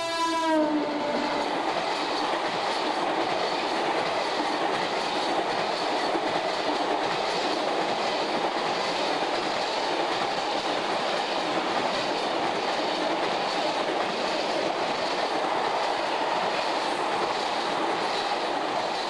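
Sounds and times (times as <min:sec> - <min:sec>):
train wheels running on rail: 0:00.0 - 0:19.0.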